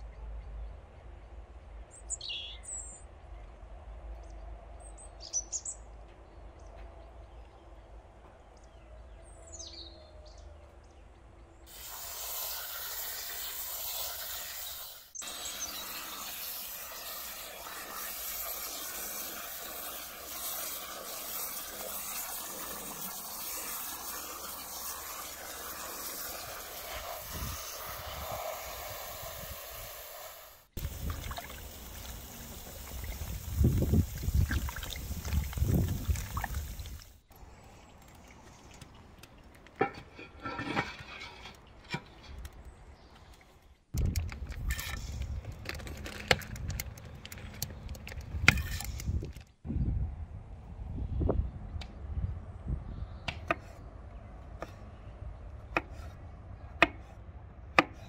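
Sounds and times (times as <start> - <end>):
bird chirp: 0.0 - 3.6, 4.2 - 11.6
hose spraying water on mushrooms: 11.7 - 38.8.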